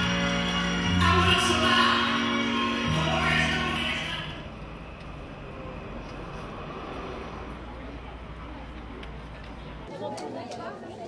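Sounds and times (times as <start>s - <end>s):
music: 0.0s - 4.4s.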